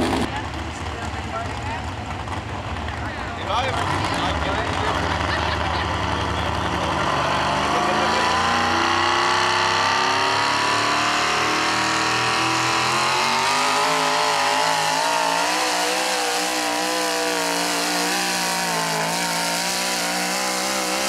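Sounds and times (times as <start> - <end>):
truck engine revving under load: 0.0 - 0.6, 2.1 - 21.0.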